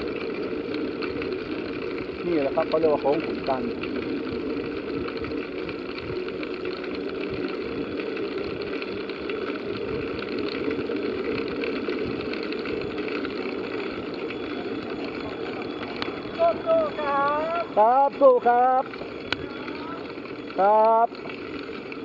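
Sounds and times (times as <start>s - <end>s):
bicycle tyre and drivetrain rumble: 0.0s - 22.0s.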